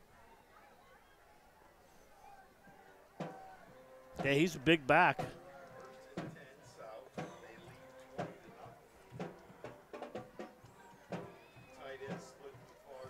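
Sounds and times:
faint band music: 3.9s - 12.8s
crowd voices: 4.1s - 5.4s.

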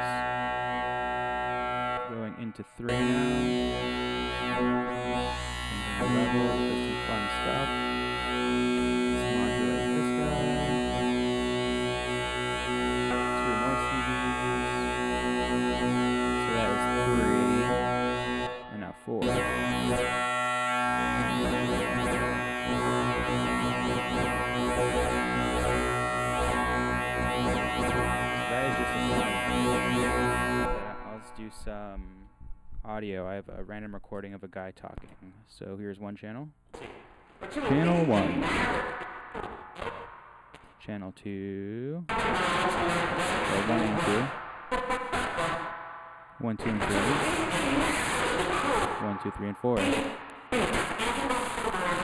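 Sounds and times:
synth tone with harmonics: 0.0s - 32.6s, 42.1s - 52.0s.

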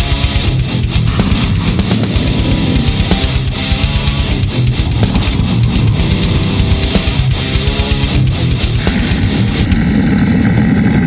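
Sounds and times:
dense distorted metal rumble: 0.6s - 7.6s, 8.3s - 11.0s.

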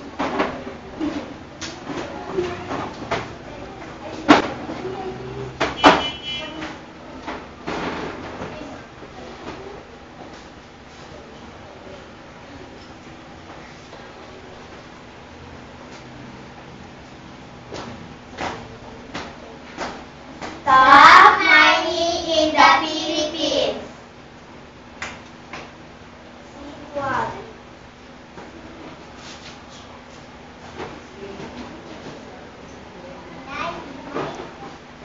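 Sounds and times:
room noise: 0.0s - 35.0s
children chattering: 0.9s - 5.6s, 20.6s - 23.9s, 31.8s - 34.8s
children singing: 20.7s - 23.8s.

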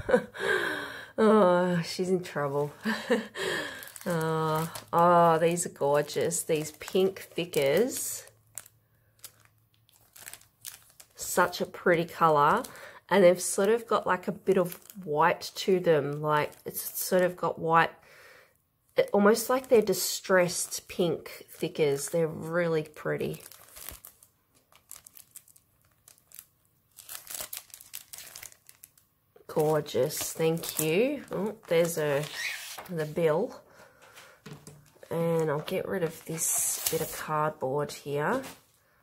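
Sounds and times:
plastic packet crinkling: 3.1s - 17.3s, 19.1s - 33.2s, 34.4s - 37.3s.

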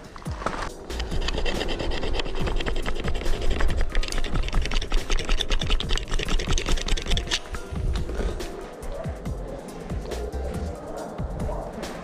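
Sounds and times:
metal tool rasping on cable: 0.9s - 8.6s.

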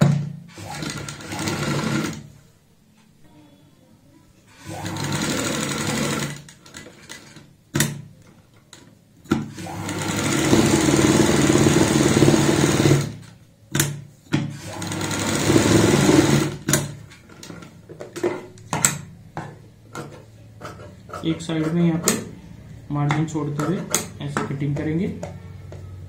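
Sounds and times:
sewing machine stitching: 0.0s - 2.3s, 4.5s - 7.4s, 9.4s - 13.3s, 14.5s - 17.0s.

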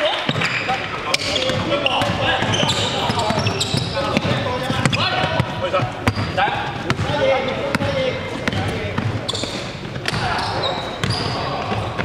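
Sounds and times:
players' voices: 0.0s - 12.0s
sneaker squeaks: 0.0s - 12.0s
basketball bouncing on gym floor: 1.2s - 12.0s.

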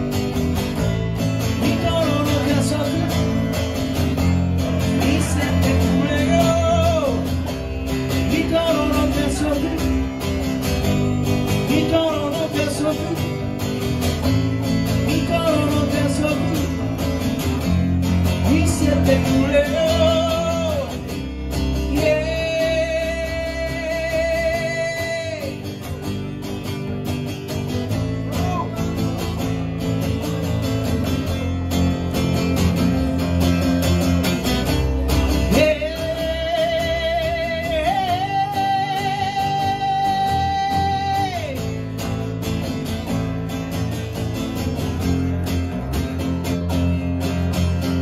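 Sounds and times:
acoustic bass guitar: 0.0s - 48.0s
acoustic guitar strumming: 0.0s - 48.0s
man singing: 0.6s - 26.3s, 34.4s - 42.2s.

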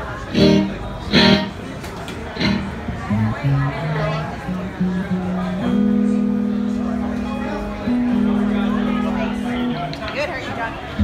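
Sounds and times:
electric guitar chord stabs: 0.3s - 1.6s, 2.4s - 10.1s.

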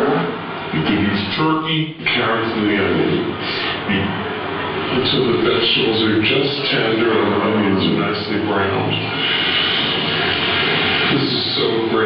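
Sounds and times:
loud steady rushing noise: 0.0s - 12.0s.

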